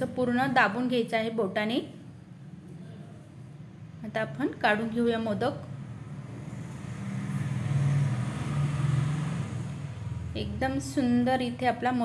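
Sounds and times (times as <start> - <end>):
passing vehicle engine rumble: 5.6 - 11.1.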